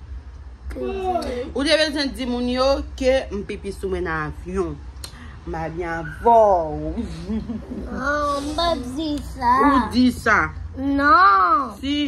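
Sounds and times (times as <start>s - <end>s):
boy speaking: 0.7s - 1.5s, 7.8s - 10.0s, 10.8s - 11.8s.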